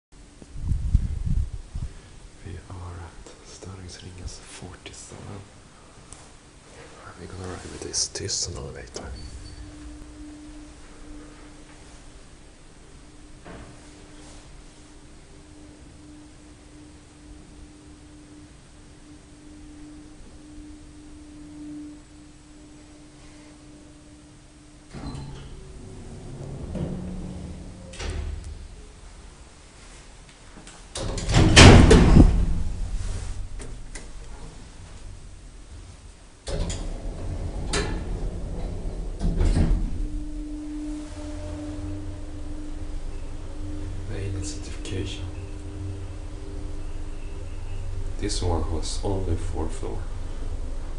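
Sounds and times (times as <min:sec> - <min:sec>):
faint rumble: 0:00.1 - 0:50.9
elevator hum: 0:00.2 - 0:50.9
elevator door clicks and knocks: 0:24.9 - 0:28.7, 0:31.0 - 0:32.7, 0:36.4 - 0:40.1.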